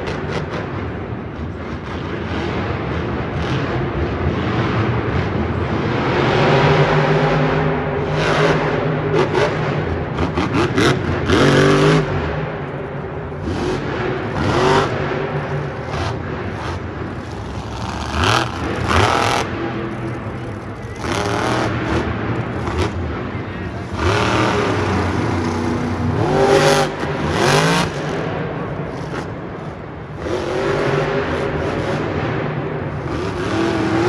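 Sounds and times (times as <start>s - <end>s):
arena noise: 0.0s - 34.0s
truck engine revving hard: 1.7s - 12.5s, 13.4s - 34.0s.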